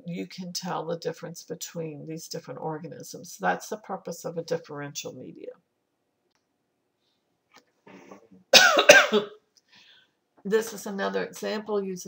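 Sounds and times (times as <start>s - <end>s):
person coughing: 8.0s - 9.4s.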